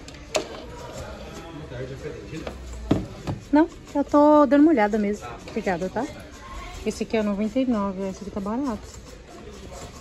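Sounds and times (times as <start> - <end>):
faint voices murmuring: 0.0 - 10.0.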